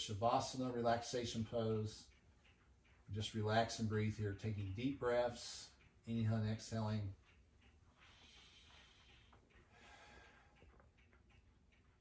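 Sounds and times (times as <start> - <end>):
person breathing slowly: 8.0 - 10.8.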